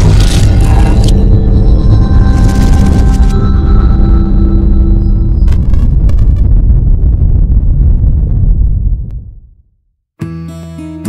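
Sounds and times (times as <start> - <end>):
deep rumbling: 0.0 - 9.9.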